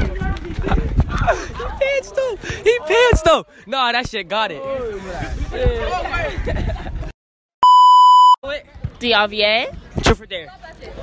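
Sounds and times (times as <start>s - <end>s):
electronic beep: 7.6s - 8.4s.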